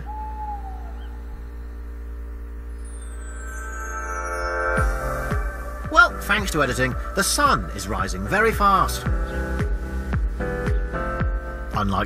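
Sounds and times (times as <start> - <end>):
owl hoot: 0.0 - 1.9
steady low hum: 0.0 - 12.0.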